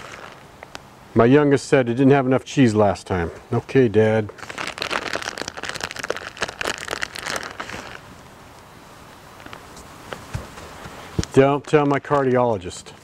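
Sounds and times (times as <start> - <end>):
plastic wrap crinkling: 0.0 - 0.8, 4.3 - 8.2, 10.7 - 13.0.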